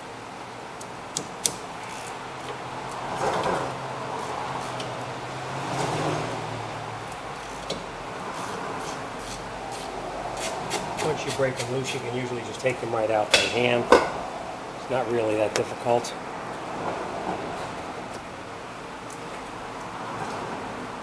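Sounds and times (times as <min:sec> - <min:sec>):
workshop hum: 0:00.0 - 0:21.0.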